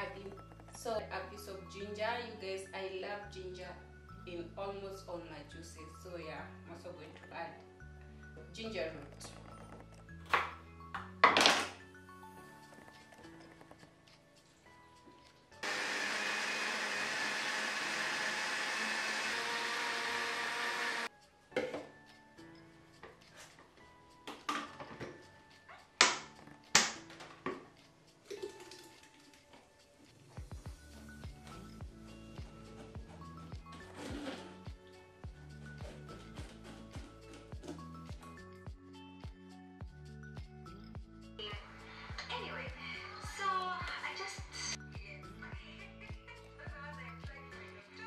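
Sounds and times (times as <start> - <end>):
blender running: 15.6 - 21.1
music with a steady beat: 34.7 - 45.2.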